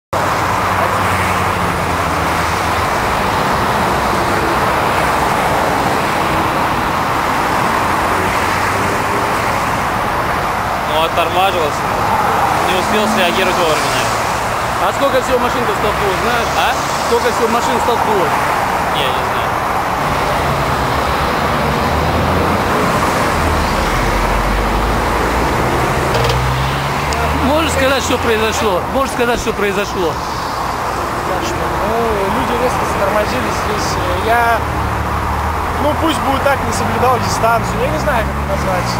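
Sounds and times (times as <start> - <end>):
highway traffic noise: 0.1 - 38.9.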